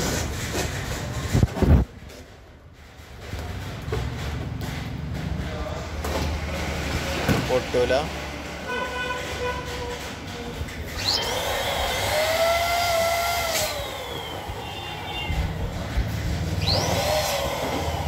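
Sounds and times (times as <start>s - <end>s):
low rumble of traffic: 0.0s - 18.0s.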